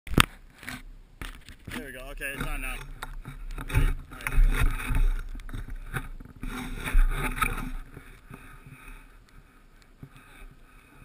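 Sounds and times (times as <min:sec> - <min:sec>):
camera handling knocks and scrapes: 0:00.1 - 0:08.4
person speaking: 0:01.8 - 0:02.9.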